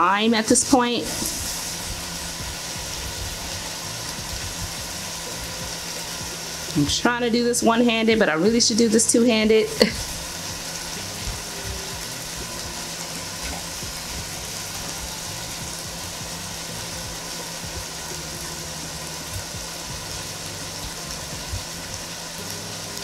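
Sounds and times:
meat and vegetables sizzling: 0.0s - 23.0s.

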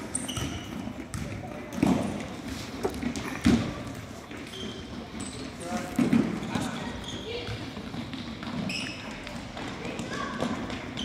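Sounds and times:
ball kicked on gym floor: 0.2s - 2.3s.

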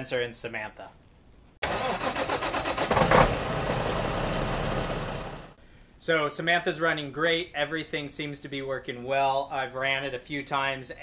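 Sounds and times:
vehicle engine starting and revving: 1.6s - 5.6s.

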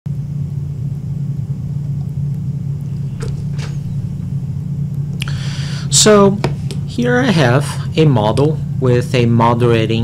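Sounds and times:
low background hum: 0.1s - 10.0s.

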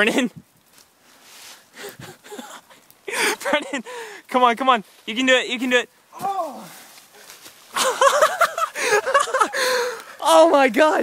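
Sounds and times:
soft rustle: 0.3s - 3.1s, 4.6s - 9.0s.

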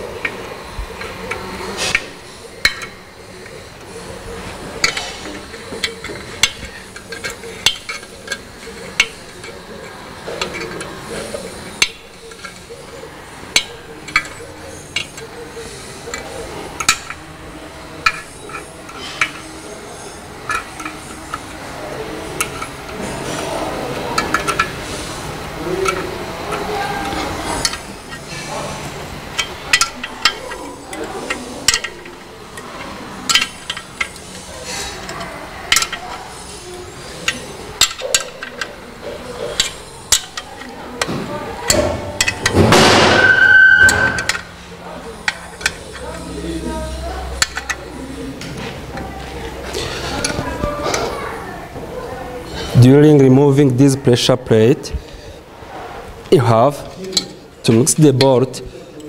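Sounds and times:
wrench clinking on bolts: 1.0s - 3.0s, 4.8s - 9.6s, 10.3s - 17.2s, 18.0s - 19.6s, 20.5s - 21.6s, 29.3s - 41.1s, 41.7s - 44.5s, 45.2s - 48.0s.

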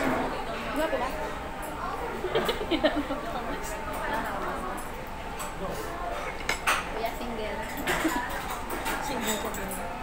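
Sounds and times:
metal spoon clinking dishes: 6.2s - 9.9s.

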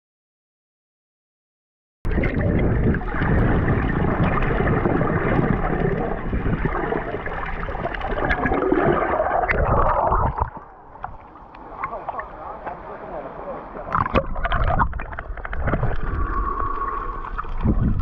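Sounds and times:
underwater rushing and gurgling: 2.1s - 18.0s.

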